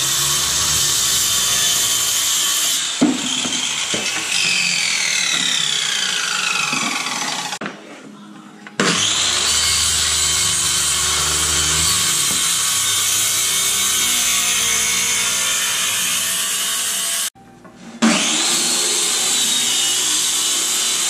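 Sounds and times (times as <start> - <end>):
circular saw cutting plywood: 0.0 - 7.6, 8.8 - 17.3, 18.0 - 21.0.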